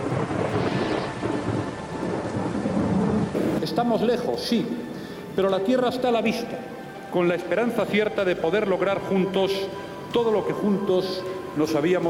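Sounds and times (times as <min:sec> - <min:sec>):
low thunder rumble: 0:00.0 - 0:05.4
heavy rain pouring: 0:00.0 - 0:12.0.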